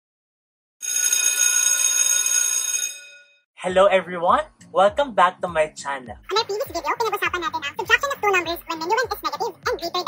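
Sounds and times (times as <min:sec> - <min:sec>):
electric bell ringing: 0:00.8 - 0:03.4.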